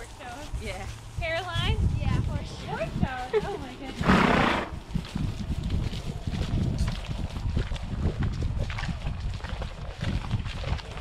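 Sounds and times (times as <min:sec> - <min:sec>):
hooves walking on soft trail: 0:00.0 - 0:11.0
horse snorting: 0:03.9 - 0:04.8.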